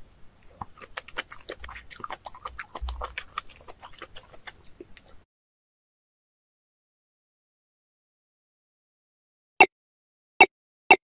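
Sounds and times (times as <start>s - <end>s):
wet chewing and biting: 0.4s - 5.2s.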